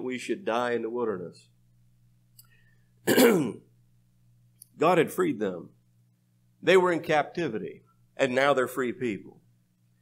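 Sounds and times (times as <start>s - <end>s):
man clearing his throat: 3.0s - 3.7s.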